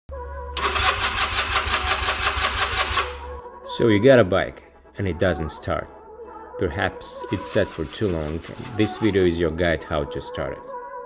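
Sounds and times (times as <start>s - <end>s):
motorcycle starter cranking: 0.6s - 3.3s, 7.4s - 9.2s.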